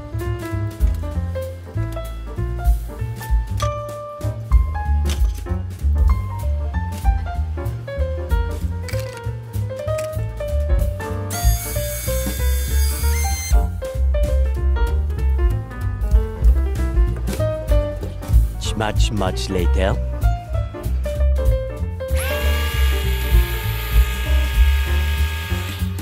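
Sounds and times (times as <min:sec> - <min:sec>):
swing music: 0:00.0 - 0:26.0
toy propeller motor whine: 0:11.3 - 0:13.6, 0:22.2 - 0:26.0.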